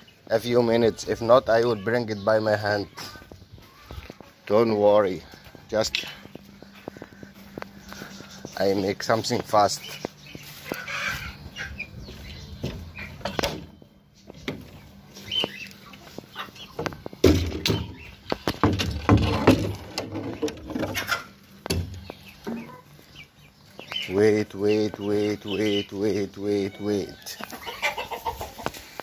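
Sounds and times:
chickens clucking: 0.0 - 29.0
knocks and rustles: 16.2 - 22.7.

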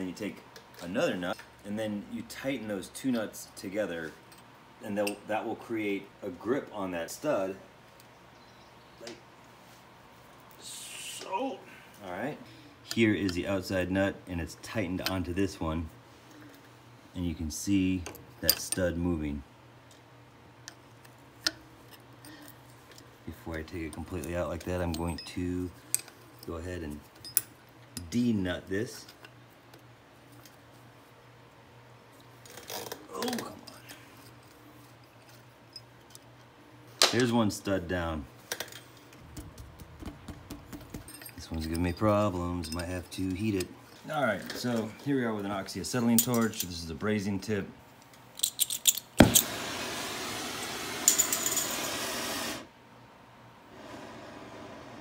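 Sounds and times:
wrench clinking on nuts: 24.2 - 26.5, 27.1 - 28.1, 40.9 - 43.0, 48.3 - 49.4
torch lighting pop: 49.2 - 52.7
rushing torch flame: 49.2 - 52.8, 53.6 - 55.0.

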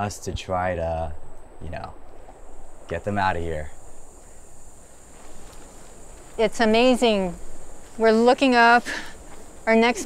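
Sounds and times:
soft background hiss: 0.0 - 10.0
high-pitched insect drone: 0.9 - 10.0.

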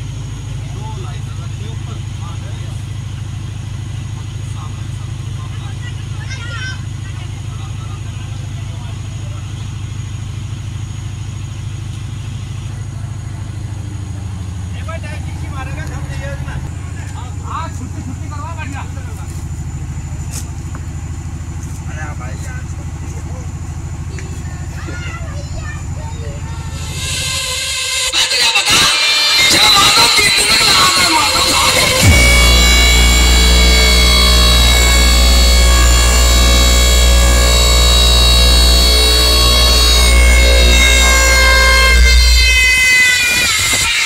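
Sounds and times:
truck engine idling: 0.0 - 43.6
faint voices: 21.7 - 42.5.

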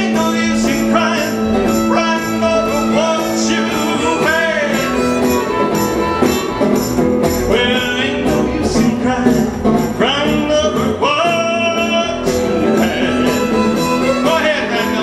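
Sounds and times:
fiddle melody: 0.0 - 9.8, 11.4 - 15.0
plucked upright bass: 0.0 - 15.0
strummed acoustic guitar: 0.0 - 15.0.

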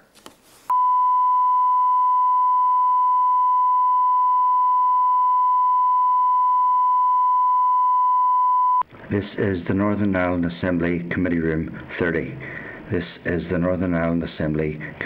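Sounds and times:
steady electronic beep: 0.7 - 8.8.

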